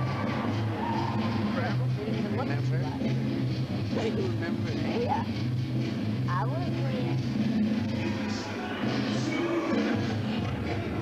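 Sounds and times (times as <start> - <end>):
indistinct background voices: 7.7 - 11.0.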